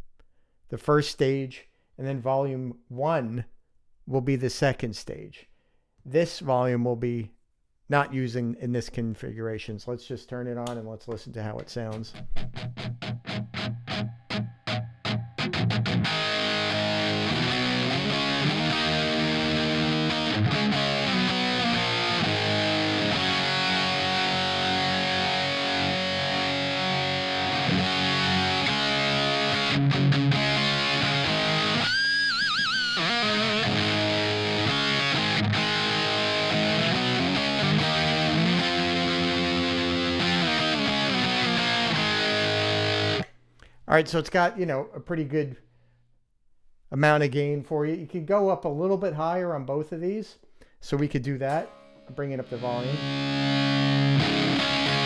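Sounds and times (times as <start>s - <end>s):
distorted electric guitar: 12.0s - 43.3s, 51.5s - 55.0s.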